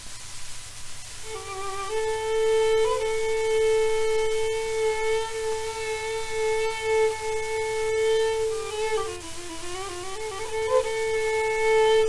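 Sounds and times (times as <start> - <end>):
record surface crackle: 0.0 - 12.0
solo violin long note: 1.0 - 12.0.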